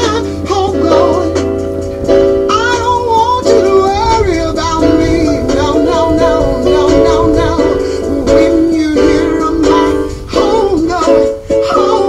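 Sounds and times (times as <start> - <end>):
held instrumental chords: 0.0 - 12.0
person singing: 0.0 - 12.0.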